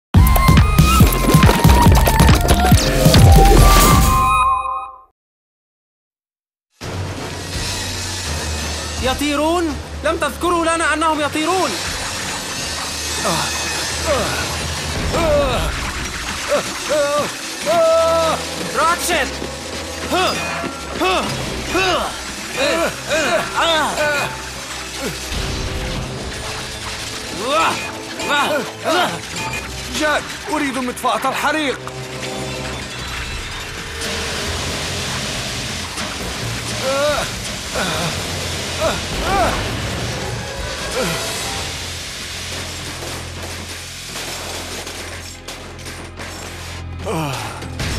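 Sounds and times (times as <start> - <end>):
background score music: 6.8 - 47.9
hissing crackling sound effect: 11.4 - 46.8
fire extinguisher hissing: 34.0 - 45.3
short falling cry: 38.8 - 39.8.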